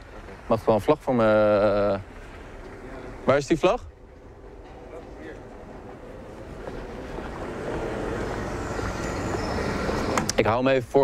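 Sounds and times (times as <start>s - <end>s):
motor vehicle passing: 1.5s - 10.5s.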